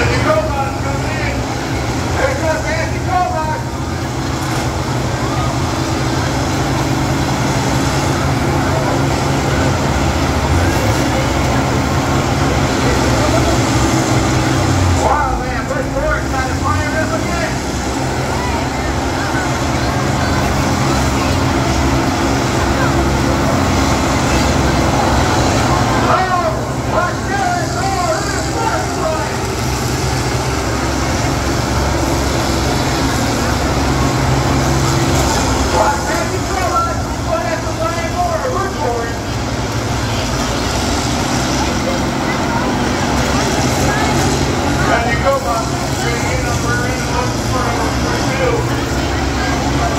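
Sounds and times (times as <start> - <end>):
diesel engines running: 0.0 - 49.9.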